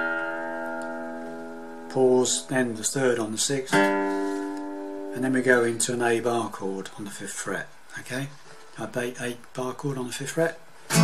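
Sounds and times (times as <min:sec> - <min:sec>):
acoustic guitar string plucked: 0:00.0 - 0:02.6, 0:03.7 - 0:05.4.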